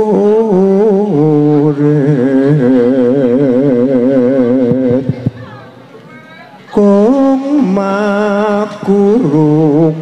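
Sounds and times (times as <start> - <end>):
person singing with wide vibrato: 0.0 - 5.9, 6.6 - 10.0.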